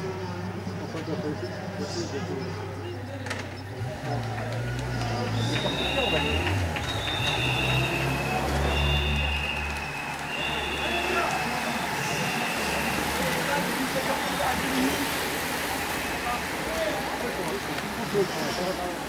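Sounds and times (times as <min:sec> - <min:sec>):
steady rush of noise: 0:05.2 - 0:19.0.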